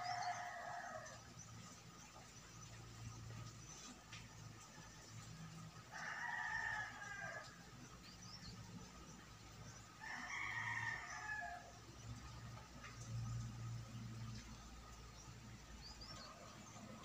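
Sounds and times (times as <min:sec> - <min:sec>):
rooster crowing: 0:05.9 - 0:07.5, 0:10.0 - 0:11.7.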